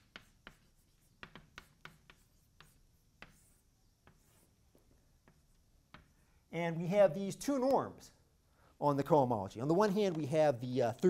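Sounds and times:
chalk tapping and scratching: 0.0 - 6.2.

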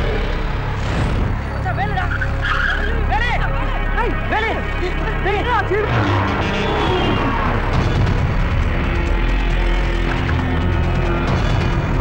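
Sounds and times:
low music drone: 0.0 - 12.0.

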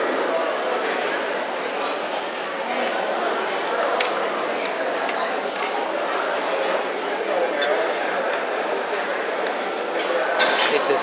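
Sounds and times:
hubbub of many voices: 0.0 - 11.0
cutlery and dishes clinking: 7.5 - 8.4, 10.0 - 11.0.

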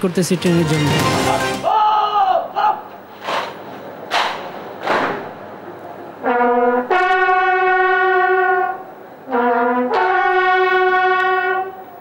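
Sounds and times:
bugle playing slow salute: 6.2 - 12.0.

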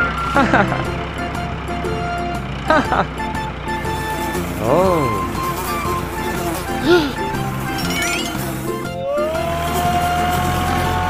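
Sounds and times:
low engine hum: 0.0 - 7.8
background music: 0.0 - 11.0
cartoon engine whine: 4.6 - 9.2.

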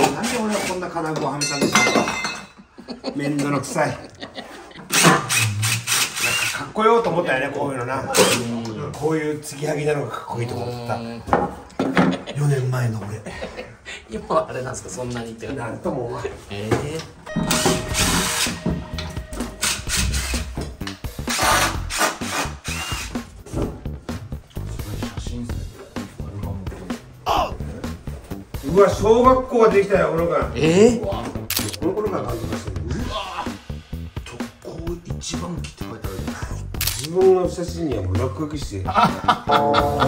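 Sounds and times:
impact driver driving a screw: 4.9 - 6.6, 21.3 - 23.1
background music: 14.6 - 40.0.

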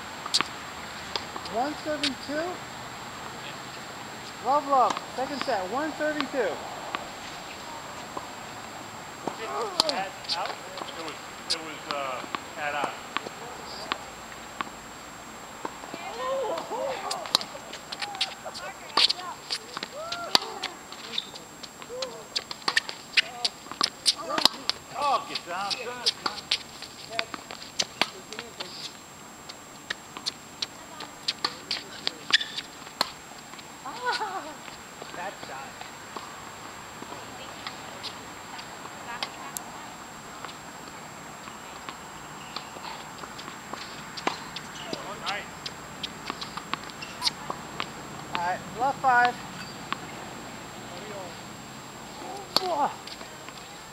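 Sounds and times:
tennis ball bouncing: 0.2 - 2.6, 3.2 - 14.8, 15.6 - 24.8, 25.6 - 26.6, 27.2 - 28.7, 29.8 - 34.4, 37.0 - 39.6, 40.4 - 48.5, 49.2 - 50.2, 52.2 - 53.6
racquet striking tennis ball: 4.5 - 7.0, 9.2 - 14.7, 15.7 - 21.3, 22.4 - 24.8, 41.9 - 48.4, 52.2 - 52.8
footsteps on hard court: 15.6 - 39.4, 40.4 - 48.4.

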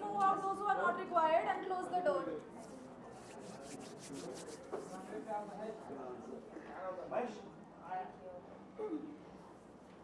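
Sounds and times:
hands rubbing together: 2.6 - 5.5.

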